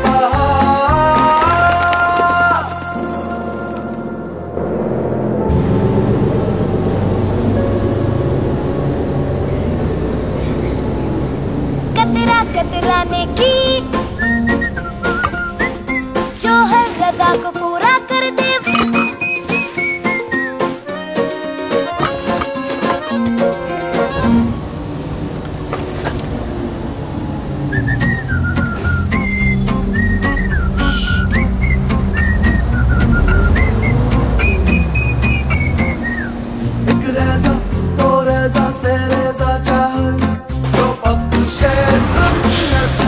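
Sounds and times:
bus engine and road rumble: 0:00.0 - 0:20.4, 0:21.9 - 0:43.0
background music: 0:00.0 - 0:25.3, 0:27.2 - 0:43.0
whistled tune: 0:07.6 - 0:17.2, 0:18.6 - 0:24.5, 0:27.5 - 0:37.0.

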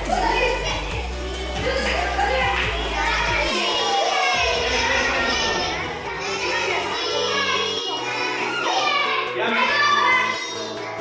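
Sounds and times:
background music: 0:00.0 - 0:11.0
children calling and chattering: 0:00.0 - 0:11.0.

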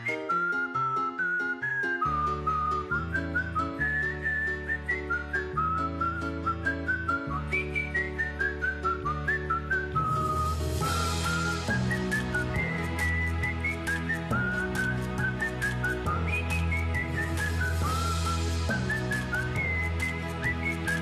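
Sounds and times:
whistled jingle over a beat: 0:00.0 - 0:21.0.

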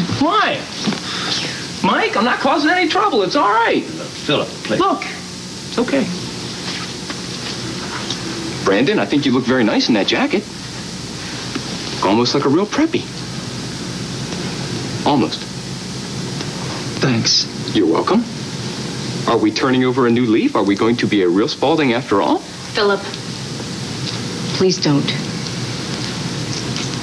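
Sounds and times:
tape hiss: 0:00.0 - 0:27.0.

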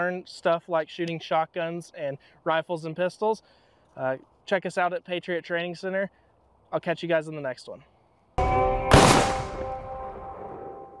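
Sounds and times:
held musical chord: 0:08.4 - 0:11.0
sharp hit: 0:08.4 - 0:11.0.

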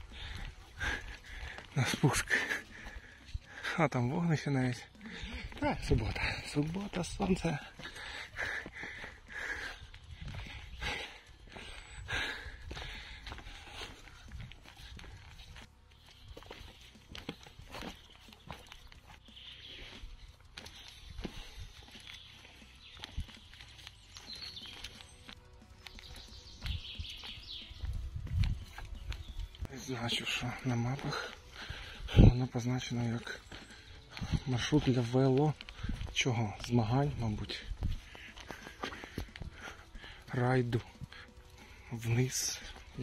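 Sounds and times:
faint music: 0:00.0 - 0:43.0
footsteps on dirt trail: 0:00.0 - 0:43.0.

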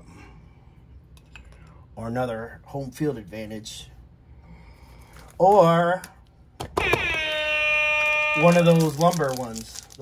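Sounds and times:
loud sustained horn-like tone: 0:06.8 - 0:09.4.

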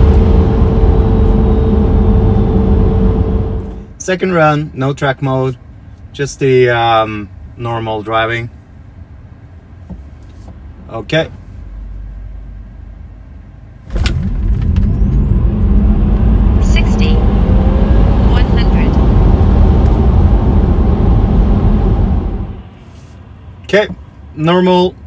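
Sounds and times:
road and tyre noise: 0:00.0 - 0:25.0.

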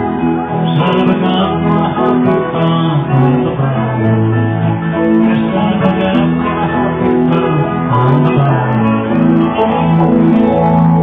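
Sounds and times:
electric guitar held notes: 0:00.0 - 0:11.0.

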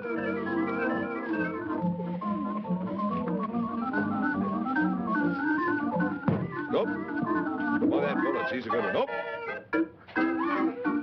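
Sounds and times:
organ music: 0:00.0 - 0:11.0.

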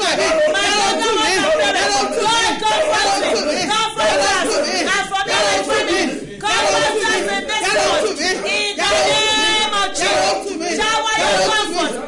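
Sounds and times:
woman praying aloud: 0:00.0 - 0:12.0.

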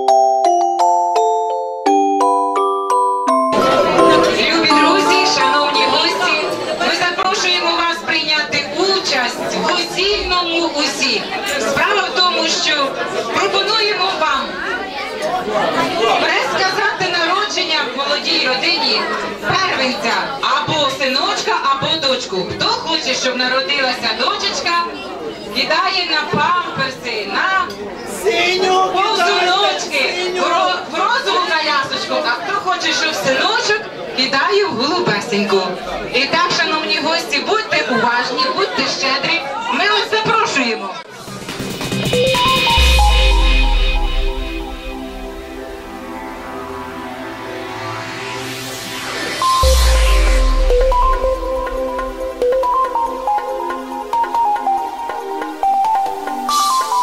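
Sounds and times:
person talking: 0:03.6 - 0:07.0
chatter of guests: 0:03.6 - 0:57.0.

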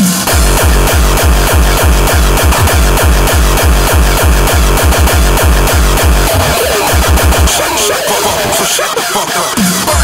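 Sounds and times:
distorted kick drum: 0:00.0 - 0:08.7
wavering synth sounds: 0:00.3 - 0:08.5.

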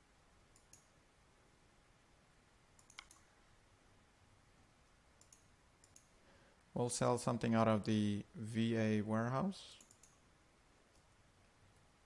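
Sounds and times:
faint computer mouse clicks: 0:00.5 - 0:00.9, 0:02.8 - 0:03.3, 0:05.2 - 0:06.1, 0:09.8 - 0:10.2.

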